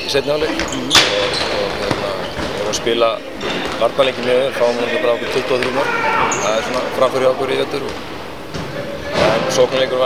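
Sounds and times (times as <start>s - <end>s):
man speaking: 0.0s - 8.0s.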